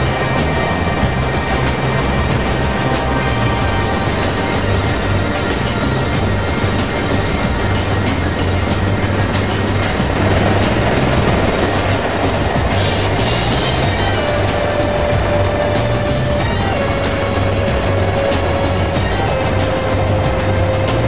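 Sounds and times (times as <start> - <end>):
helicopter engine and rotor drone: 0.0 - 21.0
music with long held notes: 0.0 - 21.0.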